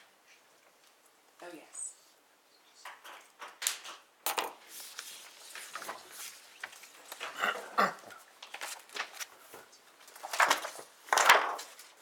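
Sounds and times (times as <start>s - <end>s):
paper rustling: 4.6s - 7.4s, 8.0s - 12.0s.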